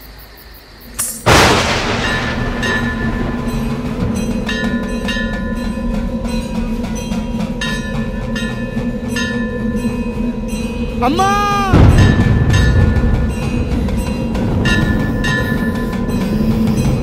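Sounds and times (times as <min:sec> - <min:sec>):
ringing metallic strikes: 0:01.0 - 0:17.0.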